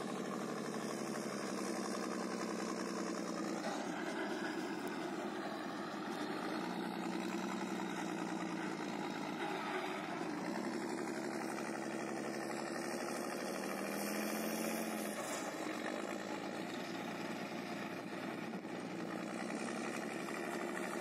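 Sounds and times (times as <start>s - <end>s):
tracked vehicle engine running: 0.0s - 21.0s.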